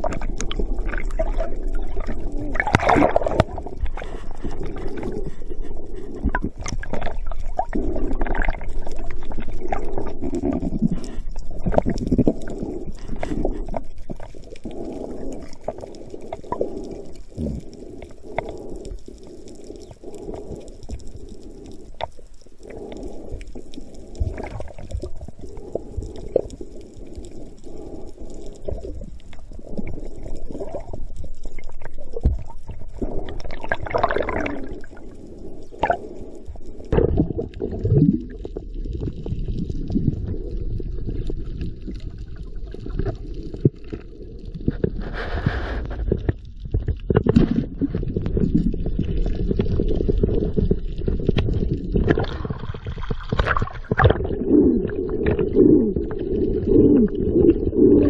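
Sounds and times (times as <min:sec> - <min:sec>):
water churning and gurgling underwater: 0:00.0 - 0:58.0.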